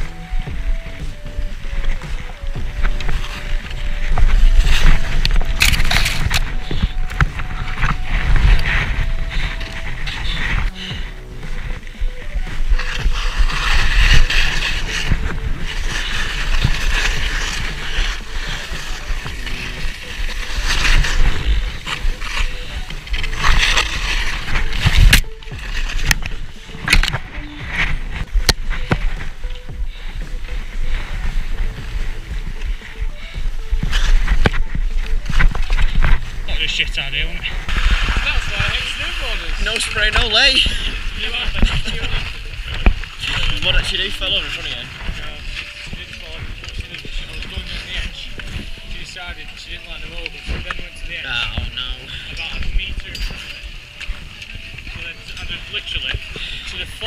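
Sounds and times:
skis swishing through powder snow: 0.0 - 57.0.

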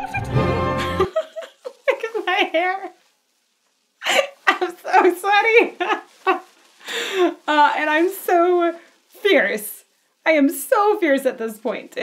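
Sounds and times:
woman talking through laughter: 0.8 - 2.9, 4.0 - 8.5.

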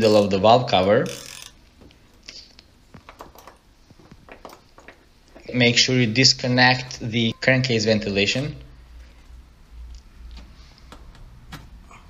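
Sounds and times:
ratchet clicking: 1.0 - 1.6.

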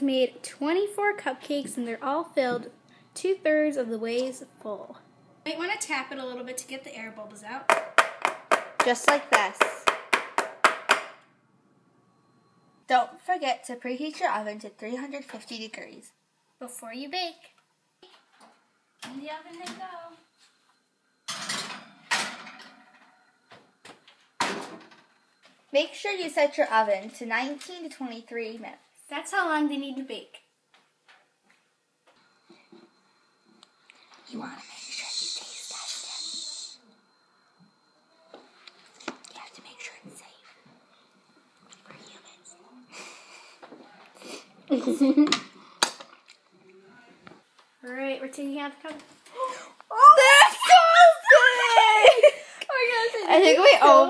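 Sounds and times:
girl squealing: 49.4 - 52.4.

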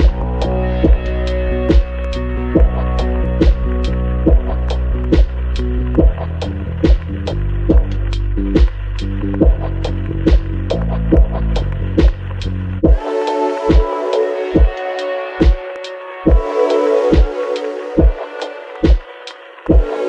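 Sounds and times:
chillout electronic music: 0.0 - 20.0.

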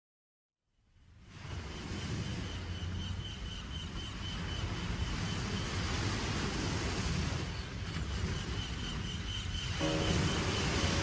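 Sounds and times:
faint high whistle: 9.8 - 11.0
rushing wash of noise: 9.8 - 11.0.

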